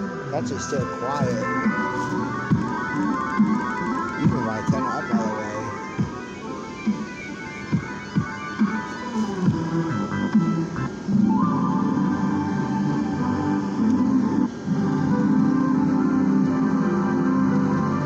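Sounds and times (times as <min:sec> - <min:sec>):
music from small speaker: 0:00.0 - 0:18.0.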